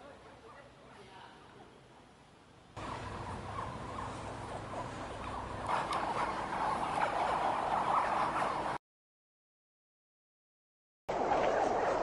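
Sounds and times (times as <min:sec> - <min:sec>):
crocodile hatchlings calling: 0:02.8 - 0:08.8.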